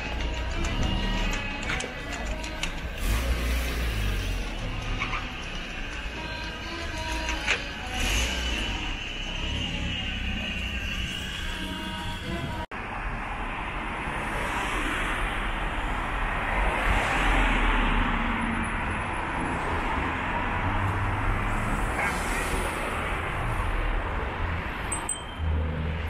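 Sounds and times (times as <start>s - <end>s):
cars driving past: 2.2s - 6.0s, 12.8s - 26.0s.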